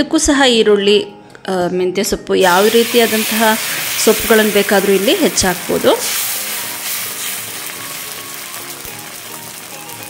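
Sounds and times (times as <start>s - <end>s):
faint background music: 0.0s - 10.0s
batter sizzling on hot pan: 2.4s - 10.0s.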